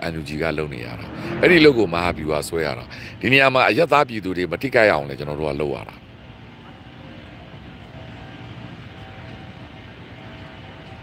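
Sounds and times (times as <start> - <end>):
distant engine rumble: 0.0 - 11.0
faint steady tones: 2.8 - 11.0.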